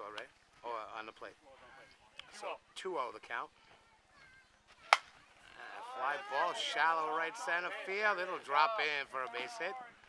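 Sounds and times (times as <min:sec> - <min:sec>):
bat hitting ball: 0:04.9 - 0:05.2.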